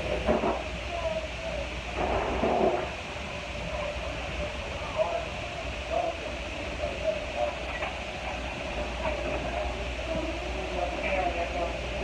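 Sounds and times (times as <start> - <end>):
murmur of voices: 0.0 - 12.0
steady low rumble and hum: 0.0 - 12.0.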